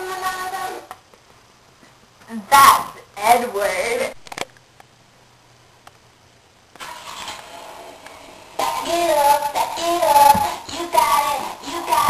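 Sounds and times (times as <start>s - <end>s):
child singing: 0.0s - 0.9s, 8.6s - 12.0s
faint room hiss: 0.0s - 12.0s.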